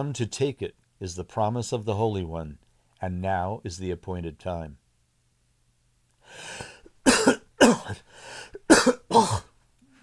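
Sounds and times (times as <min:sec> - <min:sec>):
breath in: 0:06.2 - 0:06.9, 0:08.0 - 0:08.6
man coughing: 0:06.6 - 0:09.6.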